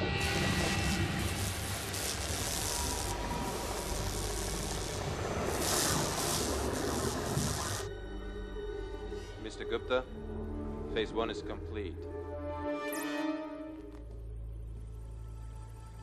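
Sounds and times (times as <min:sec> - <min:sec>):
underwater cutting torch hissing: 0:00.0 - 0:07.9.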